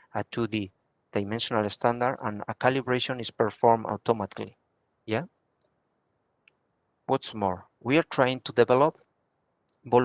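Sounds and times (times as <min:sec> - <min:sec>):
person speaking a word: 0:00.2 - 0:04.5.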